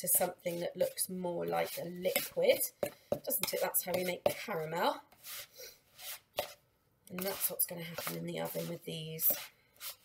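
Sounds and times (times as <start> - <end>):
spoon scraping in bowl: 0.0 - 6.6, 7.2 - 10.0.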